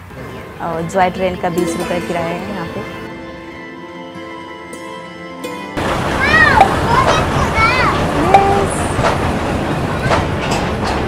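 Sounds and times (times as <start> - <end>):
sharp clicks of train: 5.8 - 11.0
train wheels rumbling on rail: 5.8 - 11.0.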